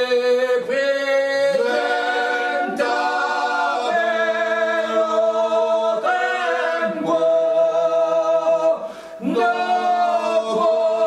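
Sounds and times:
men singing in close harmony: 0:00.0 - 0:11.0.

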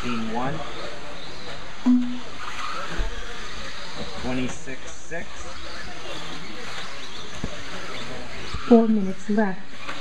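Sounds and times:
loud beep: 0:01.9 - 0:02.2
rc cars on dirt track: 0:02.5 - 0:10.0.

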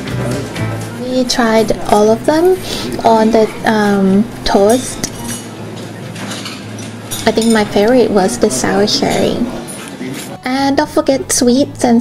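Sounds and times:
cutlery clinking against plates: 0:04.5 - 0:08.0.

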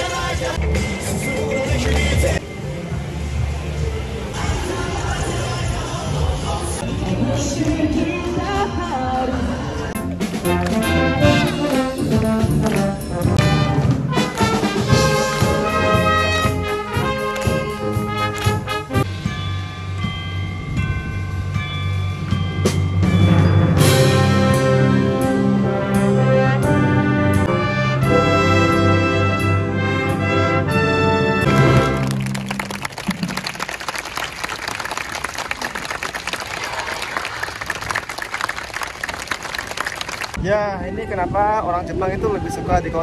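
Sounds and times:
wind band playing held chords: 0:10.0 - 0:33.2
crowd applauding: 0:31.5 - 0:40.4.

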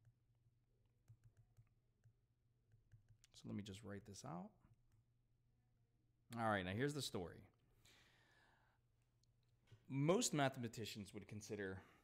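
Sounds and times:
man speaking: 0:03.4 - 0:04.6, 0:09.9 - 0:11.9
soft breath: 0:07.7 - 0:08.9.

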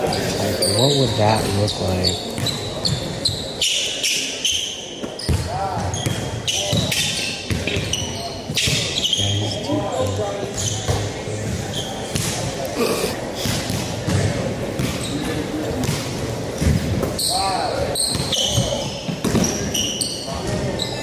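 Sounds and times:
shoe squeaks: 0:00.0 - 0:11.0, 0:11.7 - 0:12.2, 0:15.0 - 0:15.5, 0:17.2 - 0:21.0.

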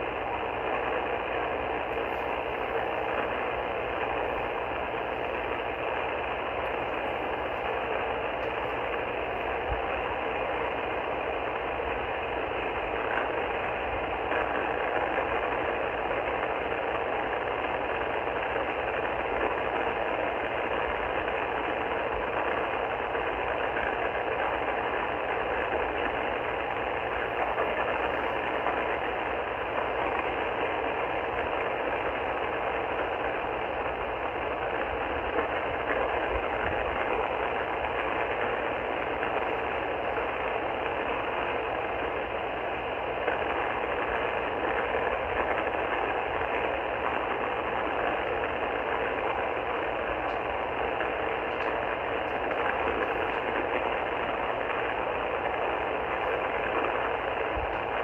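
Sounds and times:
radio static hiss: 0:00.0 - 0:58.0.

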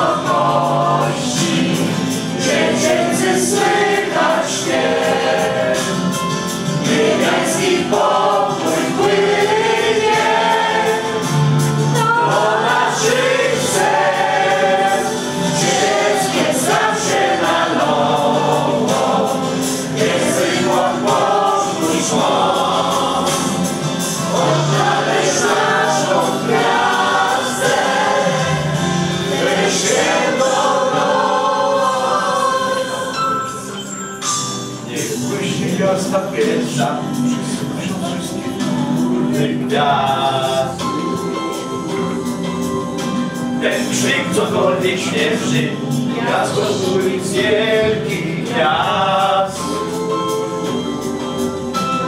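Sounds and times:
mixed choir singing: 0:00.0 - 0:33.9, 0:34.8 - 0:52.0.

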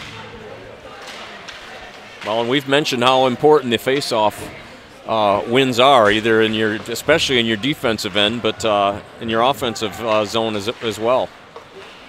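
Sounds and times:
hockey sticks and puck clacking: 0:00.0 - 0:04.4, 0:05.5 - 0:12.0
crowd murmur: 0:00.0 - 0:12.0.

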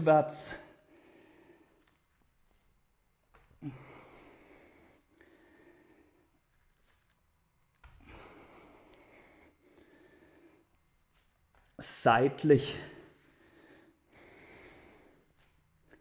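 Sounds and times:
man breathing heavily: 0:00.6 - 0:02.6, 0:03.5 - 0:07.0, 0:07.9 - 0:11.3, 0:12.7 - 0:16.0.

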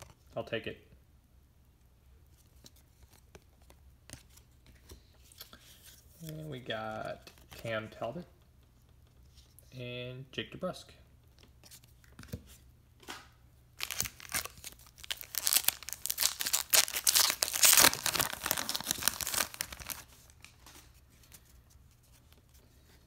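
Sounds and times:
foil wrapper ripping and crinkling: 0:13.8 - 0:20.5.

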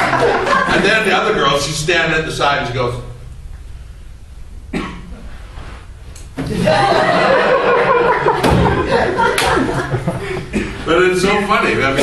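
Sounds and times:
low room hum: 0:00.0 - 0:12.0
person coughing: 0:04.7 - 0:05.2, 0:10.5 - 0:10.9.

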